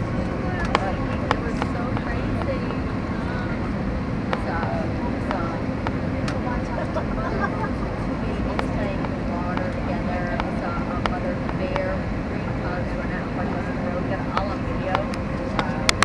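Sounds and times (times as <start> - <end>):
airliner cabin roar: 0.0 - 16.0
indistinct passenger voices: 0.0 - 16.0.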